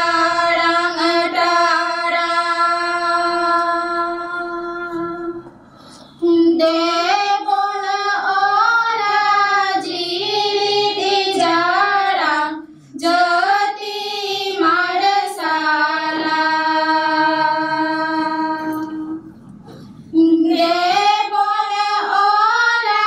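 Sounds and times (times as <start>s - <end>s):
young women singing in unison: 0.0s - 19.3s, 20.1s - 23.0s.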